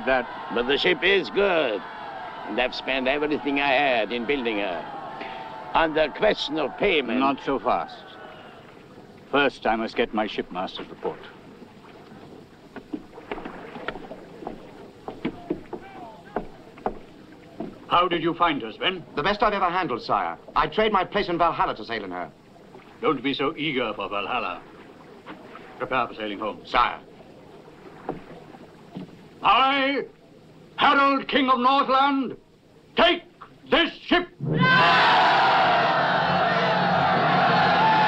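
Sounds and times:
distant voices: 0.0s - 19.4s
faint background noise: 0.0s - 38.0s
low steady hiss: 0.0s - 38.0s
wooden knocks: 12.8s - 17.8s.

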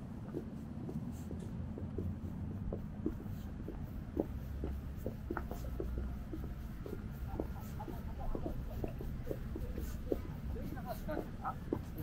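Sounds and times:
city street traffic rumble: 0.0s - 12.0s
footsteps on stone paving: 0.0s - 12.0s.

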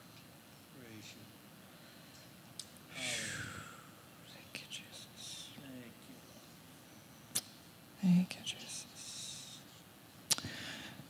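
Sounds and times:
person whispering prayer: 2.9s - 6.1s, 8.0s - 9.7s.

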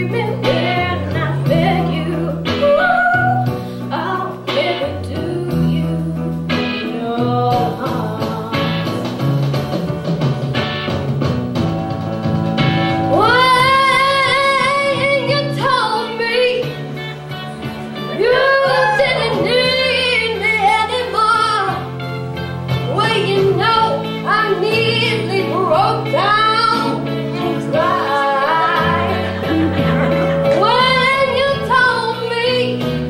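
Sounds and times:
young woman singing: 0.0s - 9.1s, 13.1s - 16.8s, 18.1s - 21.9s, 22.8s - 29.8s, 30.4s - 33.0s
instrumental accompaniment: 0.0s - 33.0s.

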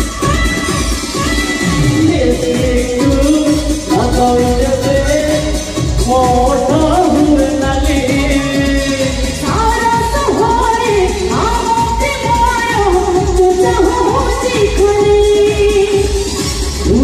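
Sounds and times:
backing track with steady beat: 0.0s - 17.0s
man singing into microphone: 1.7s - 11.8s.

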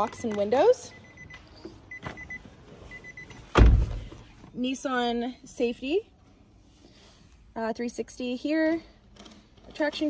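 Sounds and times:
car warning chime beeps: 0.0s - 3.5s.

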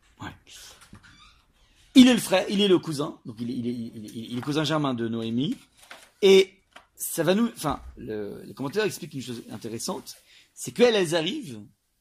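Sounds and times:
man talking: 0.1s - 0.8s, 1.9s - 11.8s
soft hiss: 7.0s - 12.0s.

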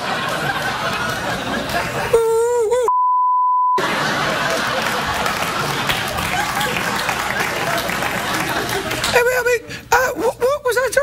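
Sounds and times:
censor bleep: 2.9s - 3.8s.

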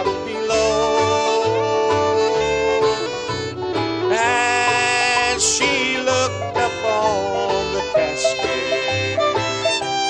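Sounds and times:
fiddle melody: 0.0s - 10.0s
guitar rhythm: 0.0s - 10.0s
walking bass: 0.0s - 10.0s.

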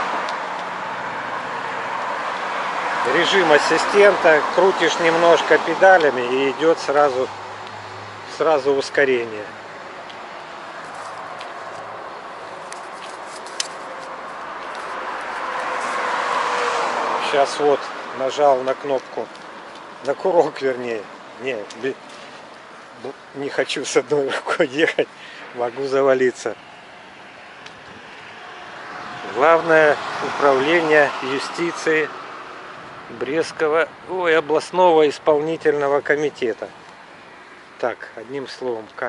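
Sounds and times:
car approaching: 0.0s - 39.0s
passing traffic: 0.0s - 39.0s.

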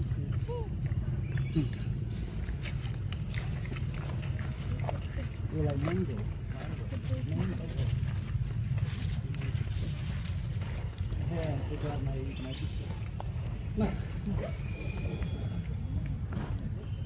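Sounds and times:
monkey chewing and smacking: 0.0s - 17.0s
steady low rumble: 0.0s - 17.0s.

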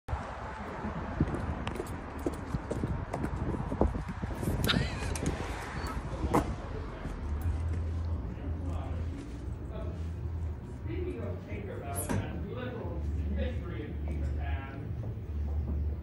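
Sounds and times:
footsteps: 0.6s - 11.5s, 14.0s - 16.0s.

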